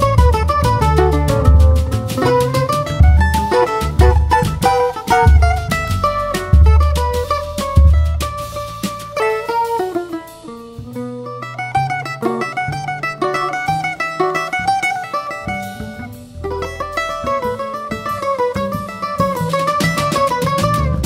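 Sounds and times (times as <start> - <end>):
drum kit: 0.0 - 21.0
mandolin picking quick melody: 0.0 - 21.0
plucked upright bass: 0.0 - 21.0.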